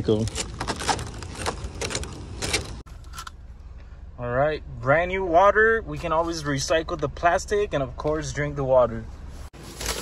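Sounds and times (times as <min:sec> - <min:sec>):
low steady hum: 0:00.8 - 0:09.5.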